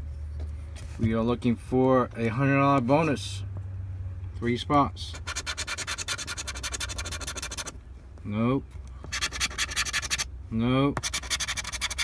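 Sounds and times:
scratching lottery ticket: 5.1 - 7.7, 9.0 - 10.3, 11.0 - 12.0.

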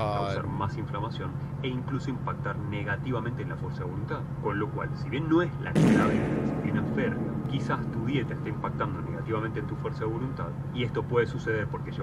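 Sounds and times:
voices: 0.0 - 12.0
loud bang: 5.8 - 10.8.

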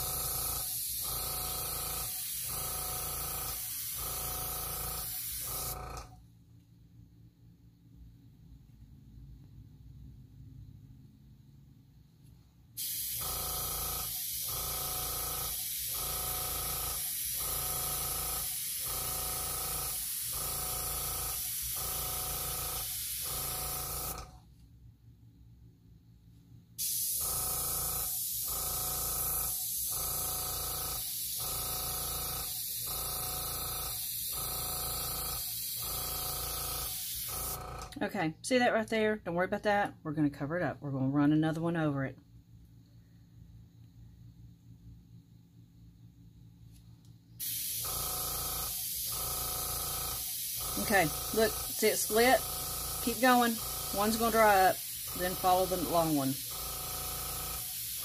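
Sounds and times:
airbrush air hiss: 0.0 - 5.8, 12.8 - 13.3, 15.4 - 24.2, 29.5 - 37.6, 47.4 - 47.9, 48.5 - 58.0
pulsing compressor tone: 0.0 - 6.2, 12.8 - 24.4, 26.9 - 37.9, 47.4 - 58.0.

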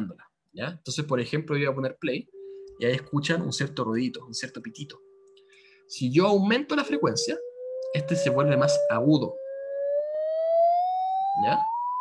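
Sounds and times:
electronic beep rising in pitch: 2.3 - 5.2, 6.0 - 12.0.

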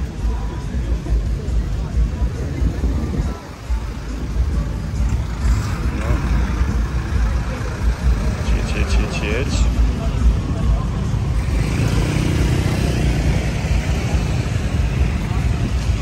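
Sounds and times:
cars and motorbikes passing: 0.0 - 16.0
people talking: 0.0 - 16.0
steady low rumble: 0.0 - 16.0.

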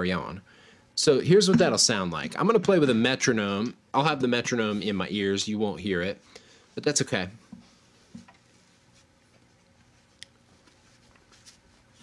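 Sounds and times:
headphones rustling and clicking: 7.5 - 12.0.

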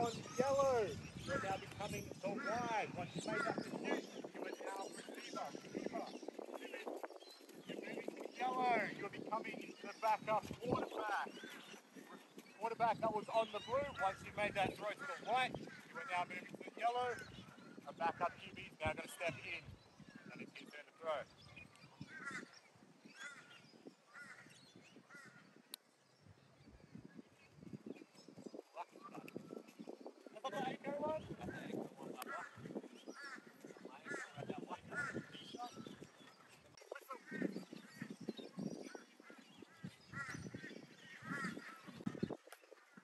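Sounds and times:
crow cawing: 22.1 - 22.5, 23.2 - 25.4, 32.3 - 35.4, 39.7 - 42.0.

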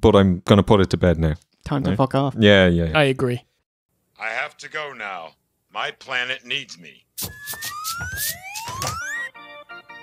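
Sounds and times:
rising whistling tones: 7.2 - 9.3.

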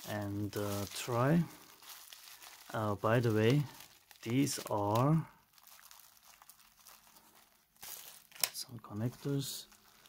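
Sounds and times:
bubble wrap crinkling: 0.0 - 10.0
bubble wrap rustle: 0.0 - 10.0.

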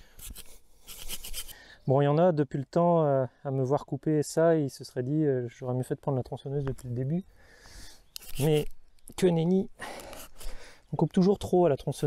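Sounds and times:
hand saw cutting wood: 0.0 - 1.5, 8.2 - 8.7.

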